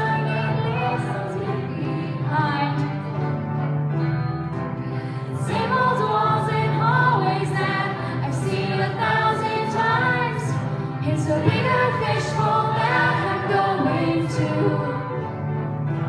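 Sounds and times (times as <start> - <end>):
choir singing: 0.0 - 3.0, 5.3 - 16.0
low instrumental accompaniment: 0.0 - 16.0.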